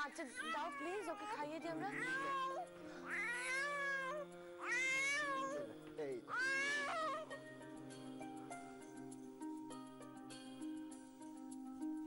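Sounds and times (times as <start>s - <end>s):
soft background music: 0.0s - 12.0s
young child crying: 0.3s - 5.6s.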